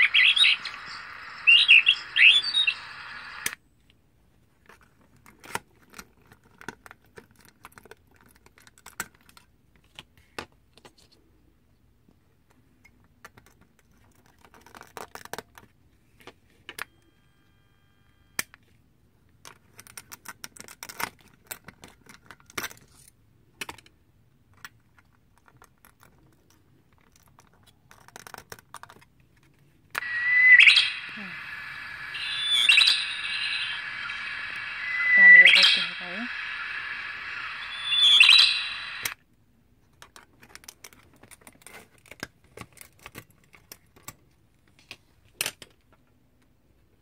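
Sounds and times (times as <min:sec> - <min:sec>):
rising chirp-like electronic calls: 0:00.0 - 0:03.5, 0:30.0 - 0:39.2
steady hiss: 0:00.0 - 0:03.6, 0:30.0 - 0:39.2.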